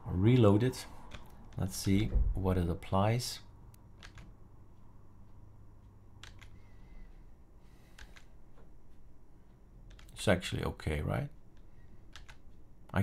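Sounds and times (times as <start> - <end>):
low steady hum: 0.0 - 13.0
faint computer clicks: 5.8 - 6.6, 7.9 - 8.7.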